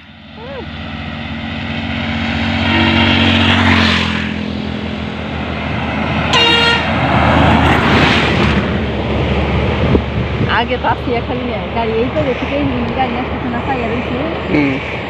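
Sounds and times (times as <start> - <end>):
road traffic passing: 0.0 - 15.0
truck passing: 0.0 - 15.0
short horn toot: 2.6 - 3.8, 6.3 - 6.9.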